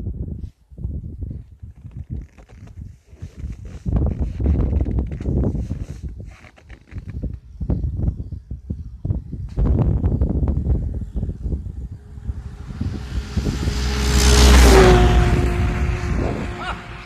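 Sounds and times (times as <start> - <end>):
snowmobile engine passing by: 10.8 - 17.0.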